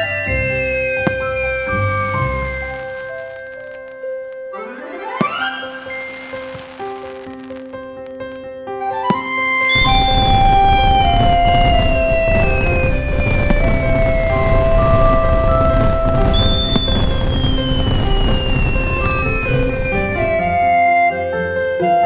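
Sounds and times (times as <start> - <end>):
fireworks rumbling: 0.0 - 3.9, 5.2 - 8.4, 9.0 - 21.2
high tone gliding downward: 9.0 - 21.4.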